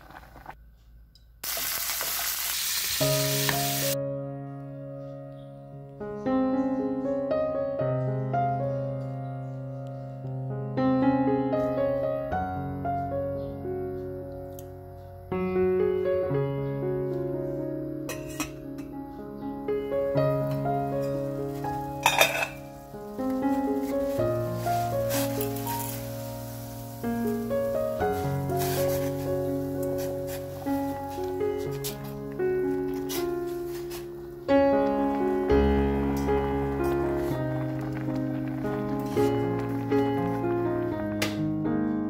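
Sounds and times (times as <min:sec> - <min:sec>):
food sizzling in hot oil: 0:01.4 - 0:04.0, 0:22.0 - 0:31.2
piano music: 0:02.8 - 0:42.0
metal pot lid clatter: 0:18.1 - 0:18.6, 0:22.0 - 0:22.7.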